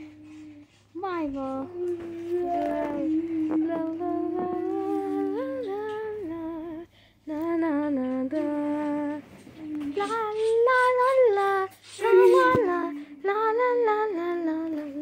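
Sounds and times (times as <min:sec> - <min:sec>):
woman humming: 0:00.0 - 0:00.6, 0:01.4 - 0:13.6.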